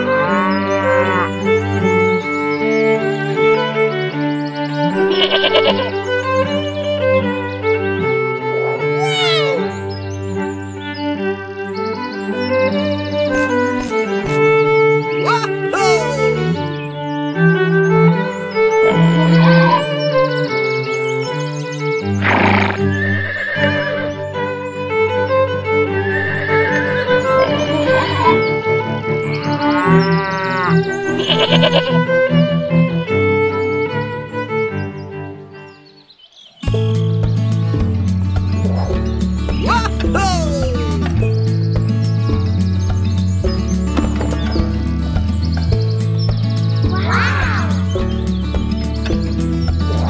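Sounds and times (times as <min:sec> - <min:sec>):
background music: 0:00.0 - 0:50.0
cow mooing: 0:00.3 - 0:01.3
horse whinny: 0:22.3 - 0:24.2, 0:25.9 - 0:28.4.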